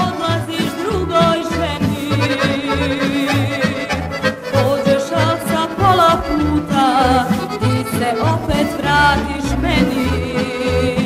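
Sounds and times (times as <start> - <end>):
accordion melody: 0.0 - 11.0
bass and chord beat: 5.8 - 10.0.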